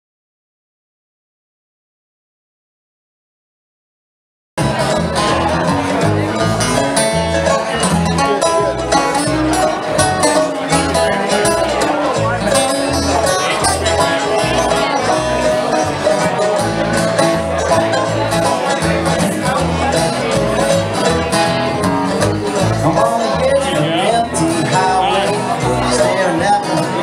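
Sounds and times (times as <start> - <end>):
bluegrass band playing: 4.6 - 27.0
upright bass plucking: 4.6 - 27.0.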